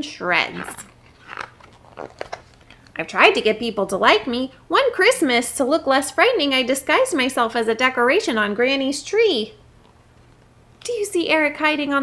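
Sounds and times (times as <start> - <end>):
book pages turning: 0.4 - 3.0
soft paper rustles: 0.4 - 3.0.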